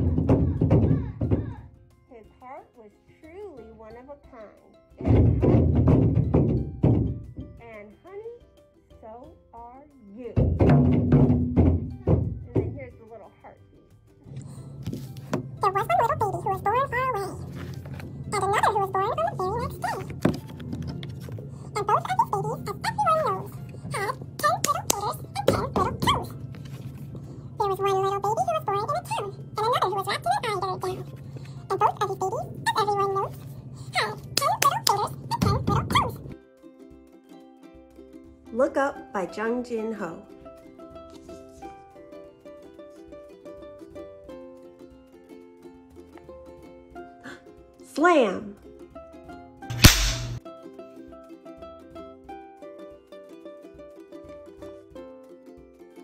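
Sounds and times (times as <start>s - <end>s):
plucked string music: 0.0s - 56.0s
sped-up woman reading aloud: 2.1s - 5.2s, 7.6s - 10.6s, 12.4s - 13.8s, 15.6s - 36.4s, 38.5s - 40.3s, 47.8s - 48.6s
wooden slapstick crack: 49.7s - 50.4s.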